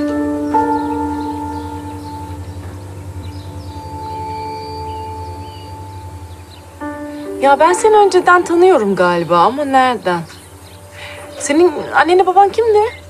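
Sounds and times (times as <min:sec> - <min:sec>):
low pulsing drone: 0:00.0 - 0:13.0
sustained bell-like tones: 0:00.0 - 0:13.0.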